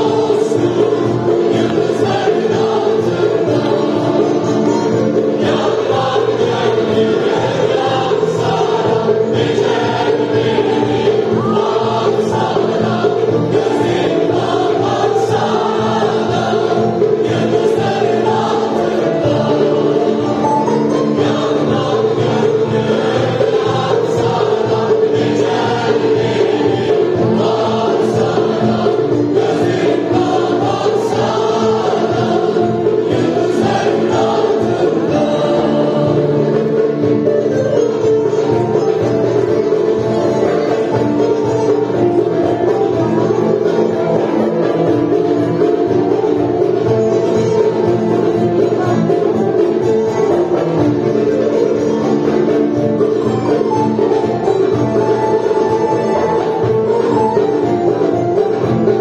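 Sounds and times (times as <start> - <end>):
mixed choir singing: 0.0 - 59.0
plucked lutes: 0.0 - 59.0.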